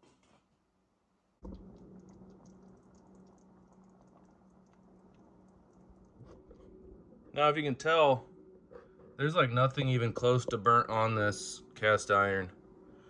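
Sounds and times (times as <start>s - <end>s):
low steady hum: 0.3s - 13.0s.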